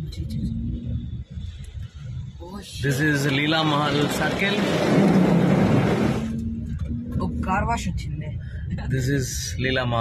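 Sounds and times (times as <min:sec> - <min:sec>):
moving car rumble: 0:00.0 - 0:10.0
heavy rain on car roof: 0:03.1 - 0:06.3.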